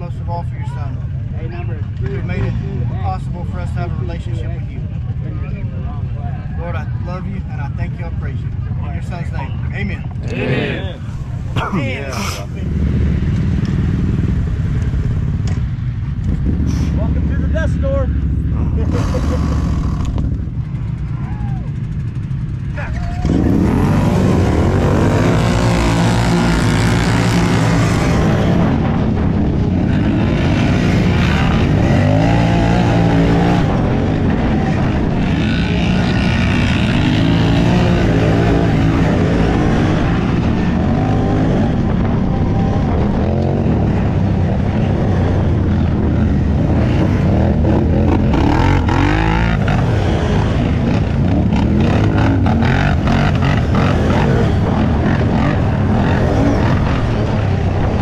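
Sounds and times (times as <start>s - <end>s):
quad engines at full throttle: 0.0s - 58.0s
quad engine revving through gears: 23.2s - 29.0s, 29.7s - 58.0s.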